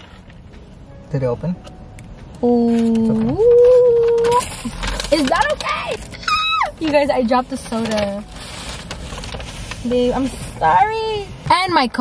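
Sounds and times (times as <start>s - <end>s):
clicks and rustling: 2.7s - 6.2s.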